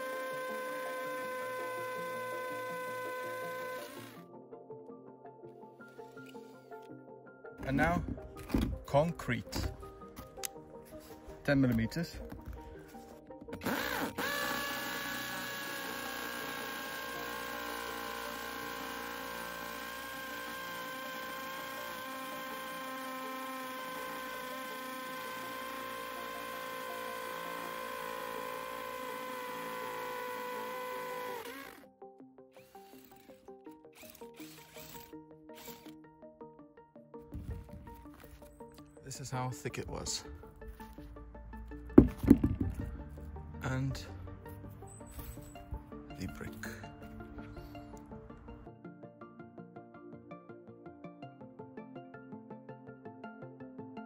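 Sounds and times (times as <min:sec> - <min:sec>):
hammer drill boring into concrete: 0:00.0 - 0:04.2, 0:13.5 - 0:31.8, 0:32.6 - 0:36.0.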